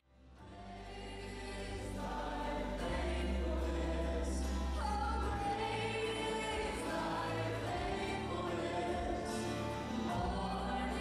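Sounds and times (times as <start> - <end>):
deep bass: 0.0 - 11.0
choral music: 0.2 - 11.0.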